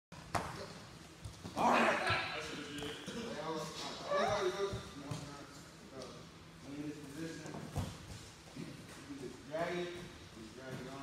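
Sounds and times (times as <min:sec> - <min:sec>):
indistinct voices in echoing gym: 0:00.2 - 0:11.0.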